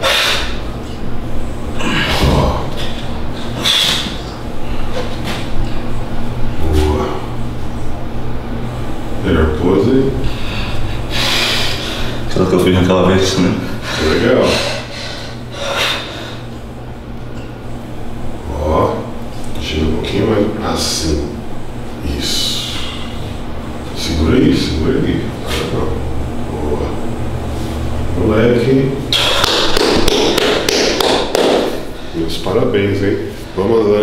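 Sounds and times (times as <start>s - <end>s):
person sharp breath: 0.0s - 0.6s, 10.2s - 12.3s, 13.7s - 16.5s, 29.1s - 29.7s
steady low hum: 0.0s - 34.0s
people clapping: 29.2s - 31.9s.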